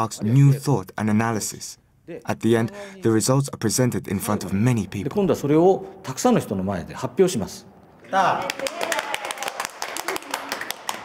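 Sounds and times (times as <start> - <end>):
people clapping: 8.1 - 11.0.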